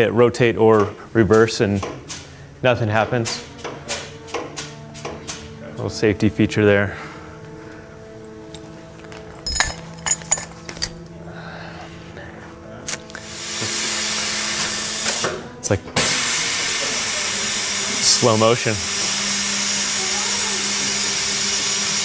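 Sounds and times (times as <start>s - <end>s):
metallic clanks: 8.3s - 11.1s
loud steady hiss: 16.0s - 22.0s.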